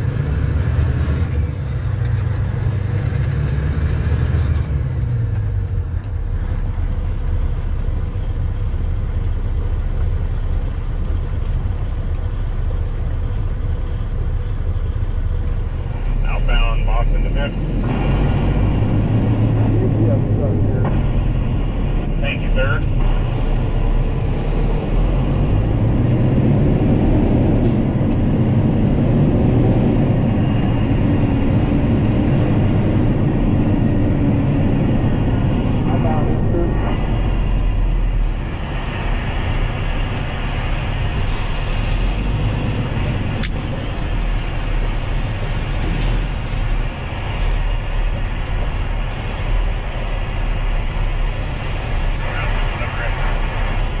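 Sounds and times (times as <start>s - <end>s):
truck diesel engine running: 0.0s - 54.0s.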